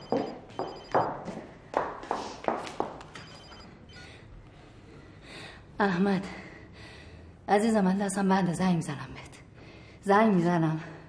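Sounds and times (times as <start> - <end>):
telephone ringing trill: 0.0 - 1.1, 3.2 - 4.1.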